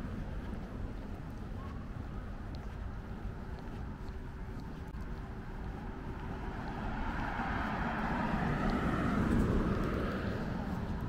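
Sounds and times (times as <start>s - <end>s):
passing vehicle engine and tyres: 2.6s - 11.0s.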